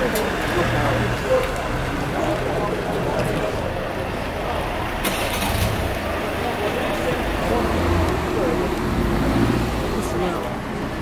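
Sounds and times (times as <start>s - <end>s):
truck engine rumbling: 0.0s - 11.0s.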